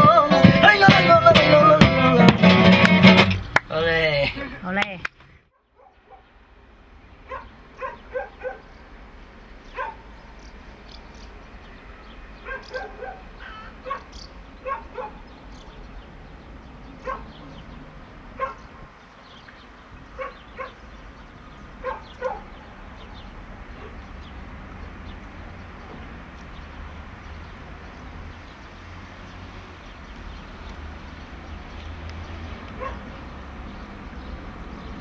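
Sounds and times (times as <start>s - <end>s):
short pitched animal calls: 13.4s - 14.2s.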